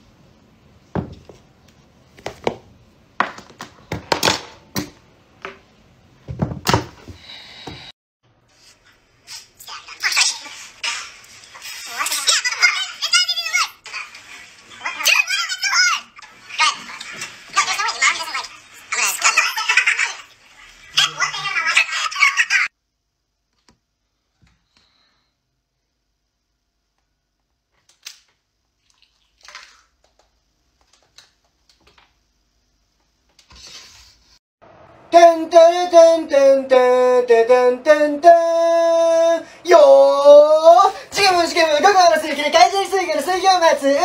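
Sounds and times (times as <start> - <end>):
objects knocking on glass tabletop: 1.0 - 1.4.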